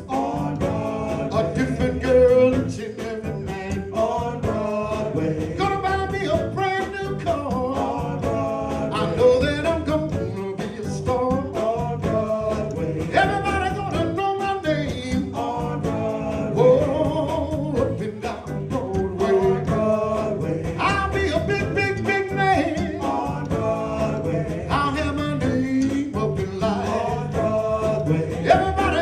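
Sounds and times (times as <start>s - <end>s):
drum kit beat: 0.0s - 29.0s
electric keyboard: 0.0s - 29.0s
male vocal group singing: 0.0s - 29.0s.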